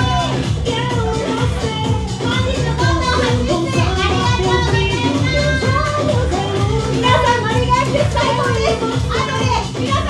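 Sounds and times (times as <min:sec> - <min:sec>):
high-pitched voice on microphone: 0:00.0 - 0:10.0
house music with bass beat: 0:00.0 - 0:10.0.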